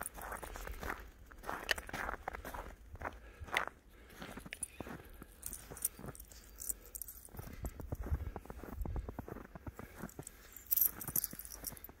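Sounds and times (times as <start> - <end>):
footsteps in snow: 0.0 - 12.0.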